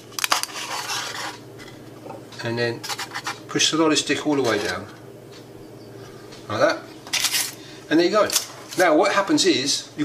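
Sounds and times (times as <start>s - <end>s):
tin foil crackling: 0.0s - 1.4s.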